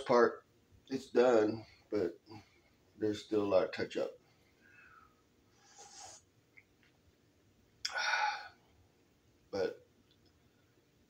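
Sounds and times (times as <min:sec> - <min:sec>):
man slurping coffee: 0:05.6 - 0:06.2
short breathy vocal sound: 0:07.9 - 0:08.6.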